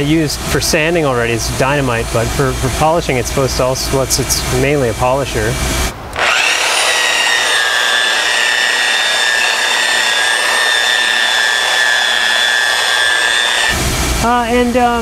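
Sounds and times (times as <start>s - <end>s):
electric polisher whining: 6.2s - 13.8s.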